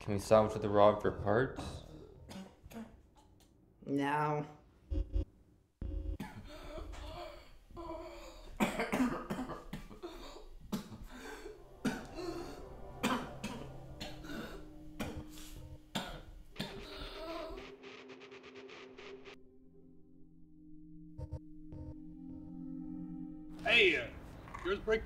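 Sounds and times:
men coughing and grunting: 0:01.6 - 0:03.1, 0:06.1 - 0:17.6
background music: 0:08.6 - 0:24.2.

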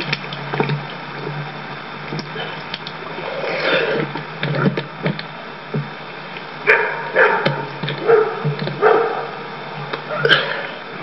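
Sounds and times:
dog barking: 0:06.7 - 0:09.4.

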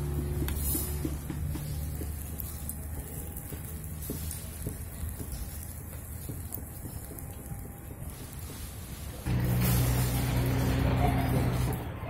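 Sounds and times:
meat sizzling on a grill: 0:00.0 - 0:11.8
steady low hum: 0:09.2 - 0:11.9.

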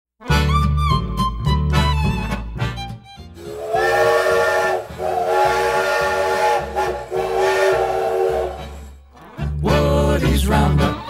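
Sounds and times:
country fiddle tune: 0:00.2 - 0:11.0
hissing steam: 0:03.4 - 0:08.9
steam locomotive whistle: 0:03.4 - 0:09.0.

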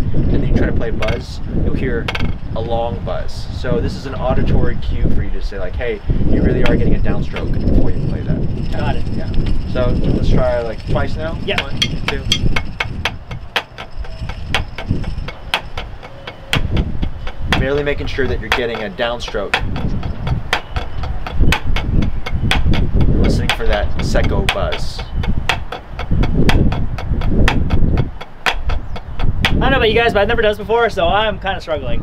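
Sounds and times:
drumsticks on practice pad: 0:10.4 - 0:29.8
buzz stroke on practice pad: 0:11.6 - 0:29.7
low rumble: 0:19.4 - 0:29.8.

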